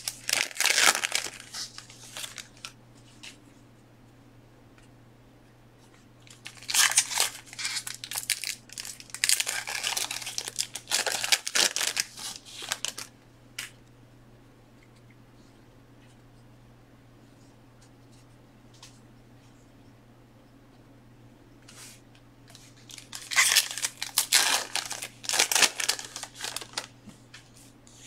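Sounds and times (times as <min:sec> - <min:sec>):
wrapping torn and crinkled: 0:00.0 - 0:02.8, 0:06.2 - 0:13.1, 0:22.5 - 0:26.9
room hum: 0:00.0 - 0:28.0.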